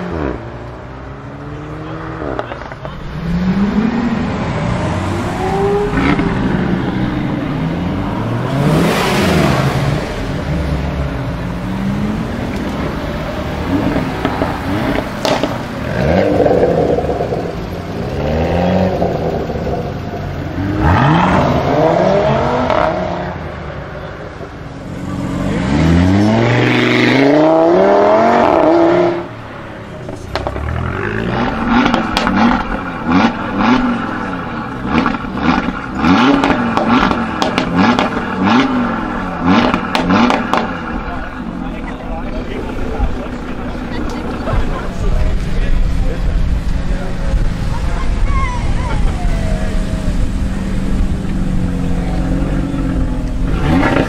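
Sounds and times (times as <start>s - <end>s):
engine revving: 0.0s - 23.6s, 24.8s - 48.2s, 48.8s - 54.0s
car engine accelerating: 0.0s - 54.0s
exhaust crackles and pops: 2.2s - 3.6s, 12.2s - 21.7s, 29.8s - 54.0s.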